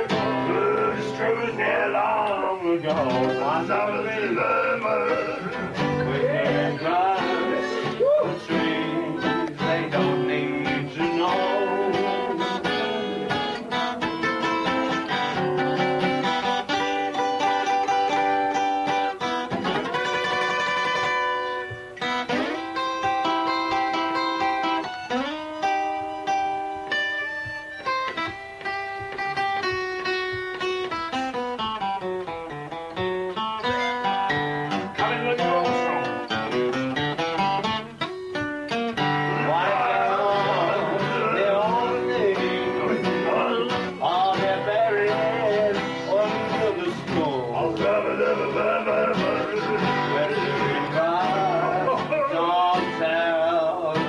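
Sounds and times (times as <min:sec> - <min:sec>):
man singing: 0:00.0 - 0:14.4, 0:34.8 - 0:36.6, 0:39.0 - 0:54.0
acoustic guitar playing: 0:00.0 - 0:54.0.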